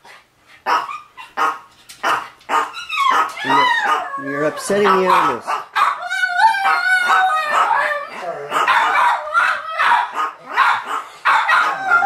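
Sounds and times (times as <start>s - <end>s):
dog barking: 0.6s - 12.0s.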